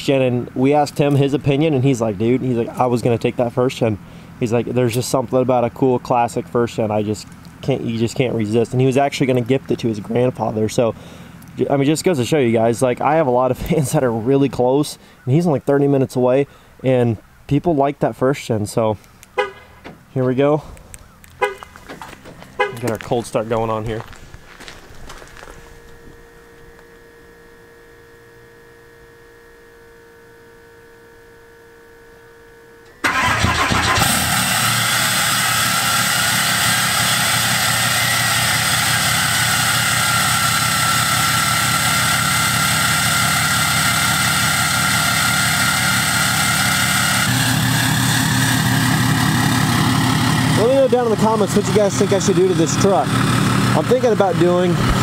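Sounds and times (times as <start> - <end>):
diesel engine starting and idling: 0.0 - 14.1, 32.8 - 55.0.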